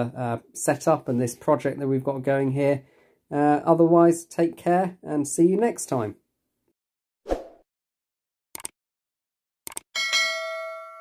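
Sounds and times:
short clicks: 0:08.6 - 0:08.8, 0:09.7 - 0:09.9
bell ding: 0:10.0 - 0:11.0.

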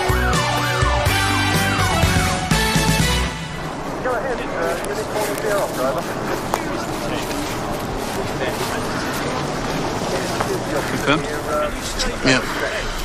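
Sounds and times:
tv theme music: 0:00.0 - 0:04.1
outdoor background noise: 0:00.0 - 0:13.0
faint indistinct voices: 0:03.6 - 0:13.0.

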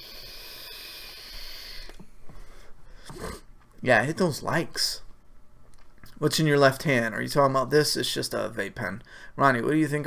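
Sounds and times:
vape pen airy hiss: 0:00.0 - 0:01.9
breathy puff: 0:00.0 - 0:03.5.

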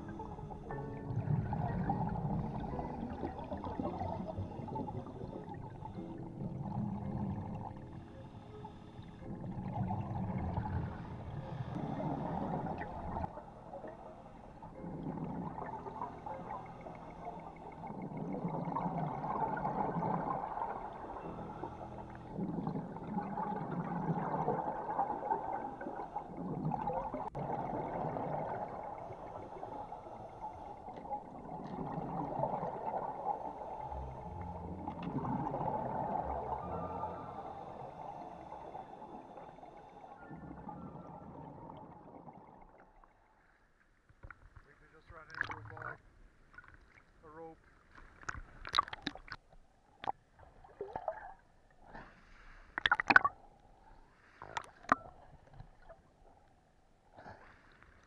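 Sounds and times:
underwater regulator breathing bubbles: 0:00.0 - 0:13.4.

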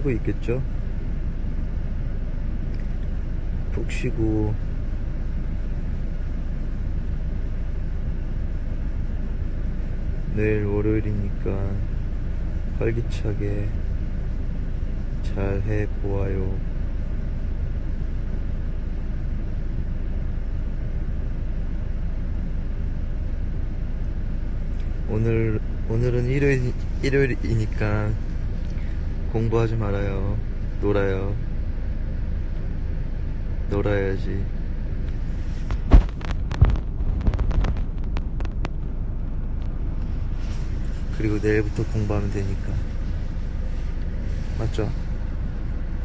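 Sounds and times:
car cabin rumble: 0:00.0 - 0:46.0.

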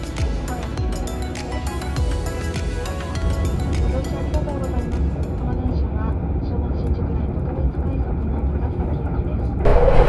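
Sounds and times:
train rumbling inside carriage: 0:04.0 - 0:10.0.

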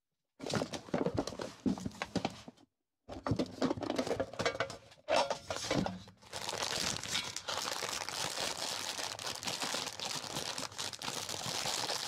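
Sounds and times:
plastic sleeves crinkling: 0:06.2 - 0:12.0.

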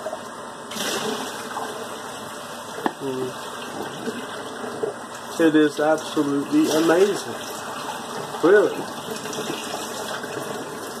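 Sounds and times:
tap water running into sink: 0:00.0 - 0:11.0.

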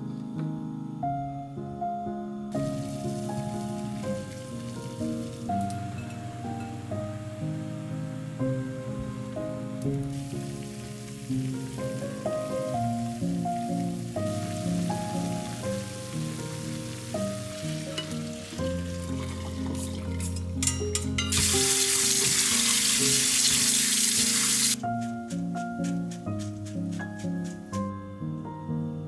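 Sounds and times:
background music: 0:00.0 - 0:29.0
sprouts boiling in a pan: 0:02.6 - 0:20.6, 0:21.3 - 0:24.8
water rushing into a metal sink: 0:10.0 - 0:20.4, 0:21.3 - 0:24.8.

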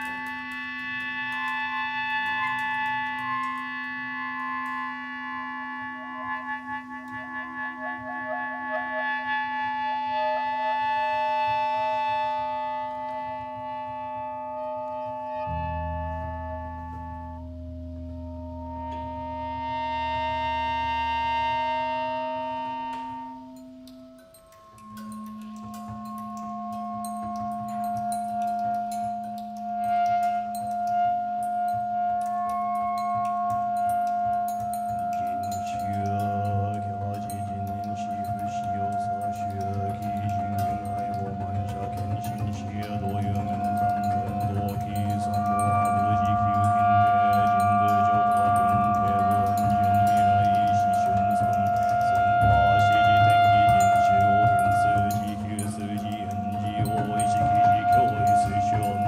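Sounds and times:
clarinets holding tones: 0:00.0 - 0:59.0
cymbal and percussion taps: 0:00.0 - 0:59.0
double bass: 0:00.0 - 0:59.0
low sustained drone: 0:00.0 - 0:59.0.

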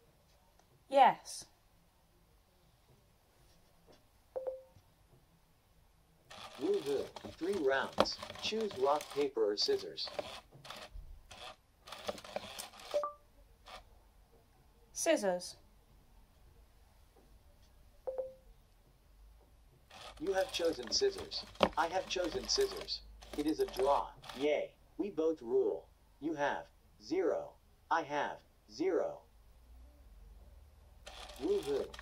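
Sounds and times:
short electronic beep: 0:04.4 - 0:04.7, 0:13.0 - 0:13.2, 0:18.1 - 0:18.4.

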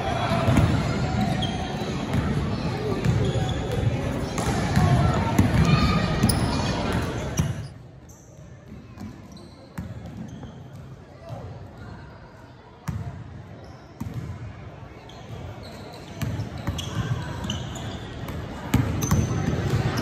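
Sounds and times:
background chatter: 0:00.0 - 0:20.0
basketballs bouncing on wood floor: 0:02.9 - 0:07.6.

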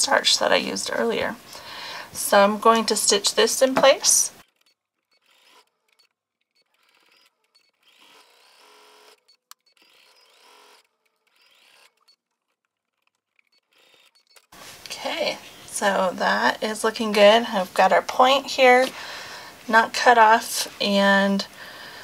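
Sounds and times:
sewing machine stitching: 0:04.4 - 0:14.5.

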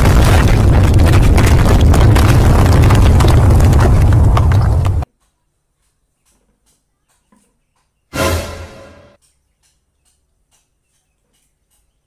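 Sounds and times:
crackling crumbling debris: 0:00.0 - 0:05.1
deep earthquake rumble: 0:00.0 - 0:05.1.

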